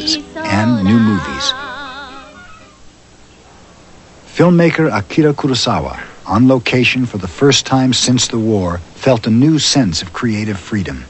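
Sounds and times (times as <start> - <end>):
women singing with vibrato: 0.0 - 2.9
old film soundtrack hiss: 0.0 - 11.0.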